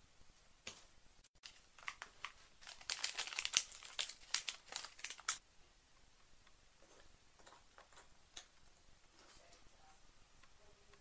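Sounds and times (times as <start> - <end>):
plastic bag crinkling: 1.4 - 5.4.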